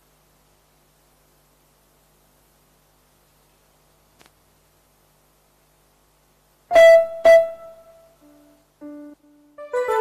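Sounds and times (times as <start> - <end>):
electronic keyboard notes ringing: 6.7 - 10.0.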